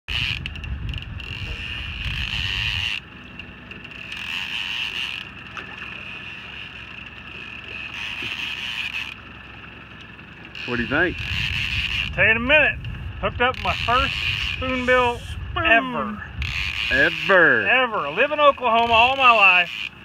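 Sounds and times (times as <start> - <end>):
wind rumbling on microphone: 0.1 - 4.3, 10.7 - 20.0.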